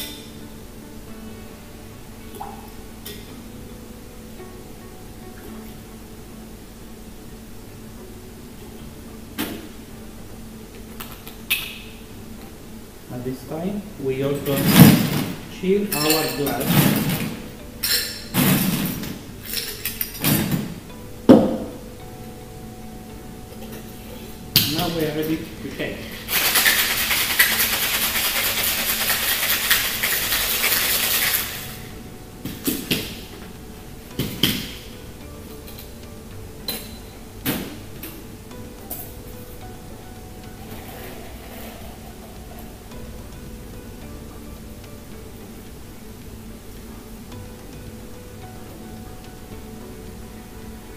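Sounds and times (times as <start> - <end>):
ice and glassware clinking: 15.9 - 20.7, 26.1 - 31.8
cocktail shaker with ice shaken: 26.0 - 31.9.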